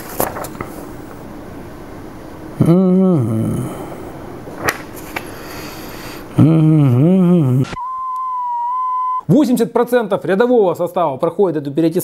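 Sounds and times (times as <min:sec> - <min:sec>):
man's wavering vocal note: 0:02.6 - 0:04.2, 0:06.3 - 0:09.2
high-pitched test tone beep: 0:07.7 - 0:09.3.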